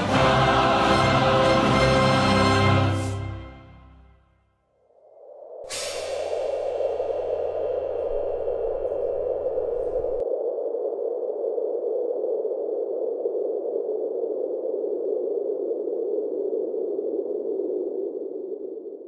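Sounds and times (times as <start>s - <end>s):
soundtrack music with bass line: 0.0s - 4.2s
muffled rushing noise: 5.7s - 10.2s.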